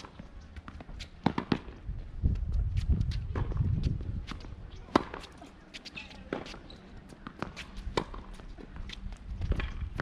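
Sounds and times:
tennis racket hitting ball: 0.0 - 1.8, 4.2 - 6.6, 7.2 - 9.8.

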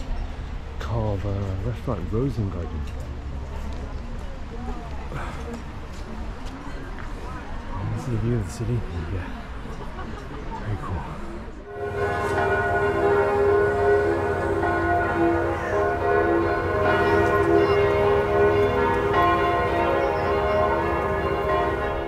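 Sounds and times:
church bells pealing: 11.7 - 22.0.

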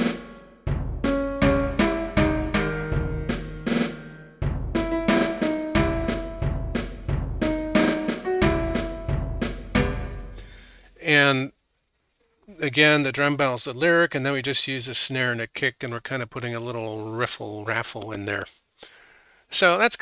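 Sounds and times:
snare drum: 0.0 - 10.4
high pitched drum melody: 0.0 - 10.7
kick drum: 0.7 - 3.7, 4.4 - 10.4.

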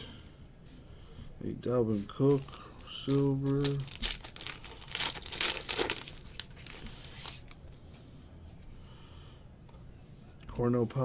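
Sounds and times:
cards rustling: 2.0 - 7.6
foil wrapper crinkling: 2.3 - 7.6.

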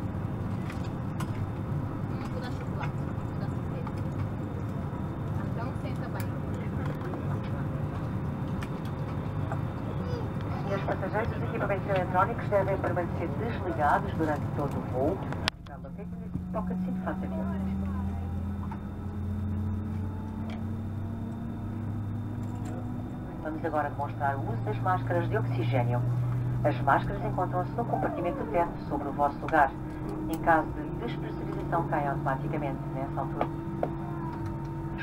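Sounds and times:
aircraft cabin hum: 0.0 - 35.0
murmur of voices: 23.2 - 35.0.

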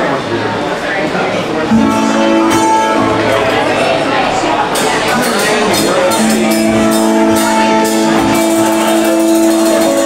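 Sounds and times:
cymbal hits: 1.7 - 10.0.

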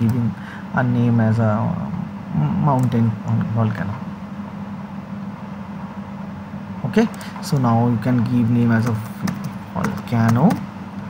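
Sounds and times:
low background hum with hiss: 0.0 - 11.0.

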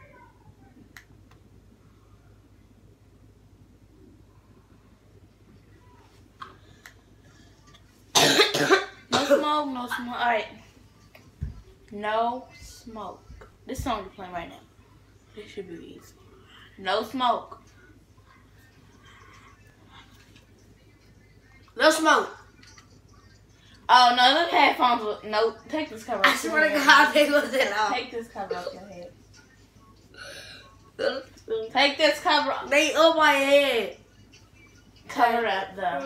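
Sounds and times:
low room hum: 0.0 - 36.0
person coughing harshly: 8.2 - 9.6.

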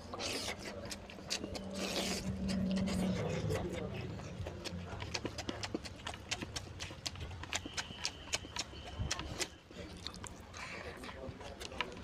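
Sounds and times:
chewing and lip-smacking: 0.0 - 12.0.

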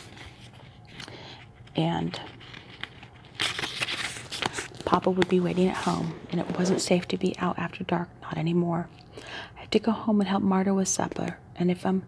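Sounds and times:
paper page turning: 1.7 - 7.2.

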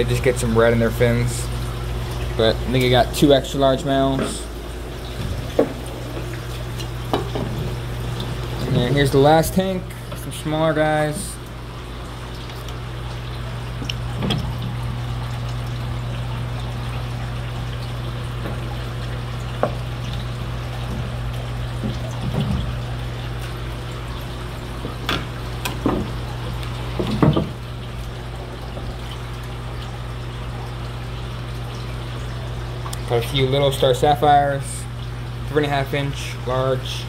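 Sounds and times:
steady low hum: 0.0 - 37.0
water splashing in tank: 0.0 - 37.0.

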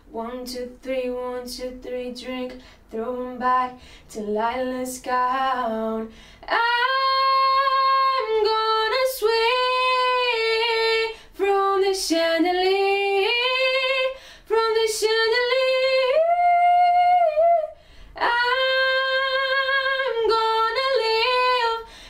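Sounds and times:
woman singing a cappella: 0.0 - 22.0
sharp breaths: 17.8 - 18.2.

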